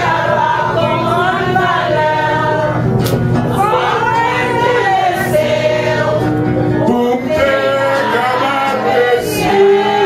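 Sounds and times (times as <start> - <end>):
acoustic guitar: 0.0 - 10.0
group singing together: 0.0 - 10.0.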